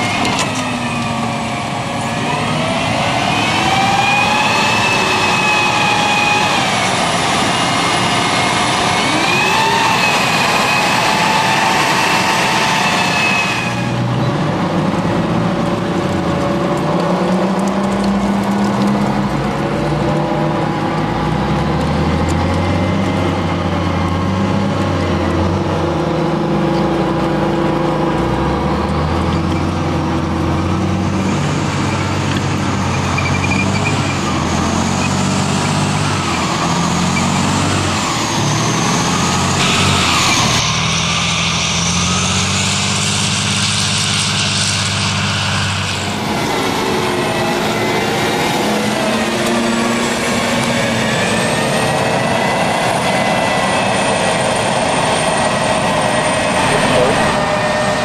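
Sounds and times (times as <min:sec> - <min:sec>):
gas turbine engine whine: 0:00.0 - 0:33.2, 0:37.8 - 0:58.0
tracked vehicle diesel engines: 0:00.0 - 0:58.0
high wavering track whine: 0:39.5 - 0:42.1, 0:56.2 - 0:58.0.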